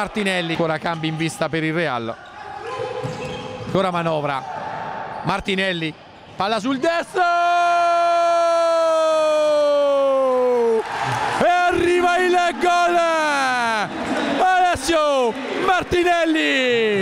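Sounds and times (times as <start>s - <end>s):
male commentator shouting: 6.5s - 17.0s
crowd cheering: 6.6s - 17.0s.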